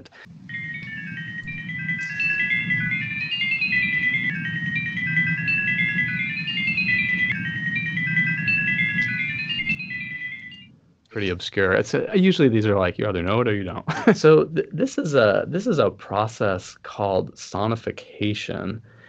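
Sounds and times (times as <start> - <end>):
steady low rumble: 0.0 - 13.9
electronic beeping tones: 0.3 - 10.7.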